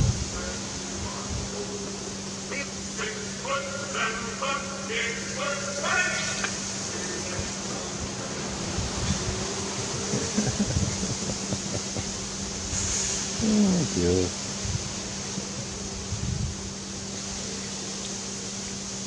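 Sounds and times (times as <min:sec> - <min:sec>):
steady low hum: 0:00.0 - 0:19.0
indistinct voices talking: 0:00.3 - 0:12.4, 0:13.4 - 0:14.3.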